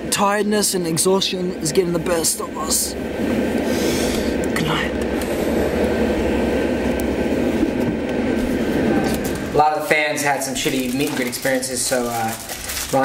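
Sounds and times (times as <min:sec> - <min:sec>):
bus rumble and road noise: 0:00.0 - 0:13.0.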